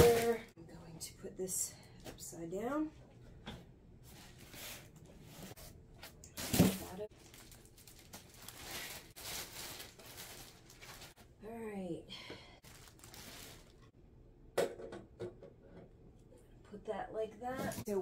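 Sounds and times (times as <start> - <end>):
plastic wrapping rustling: 0.0 - 0.5, 6.4 - 11.2, 12.6 - 13.9.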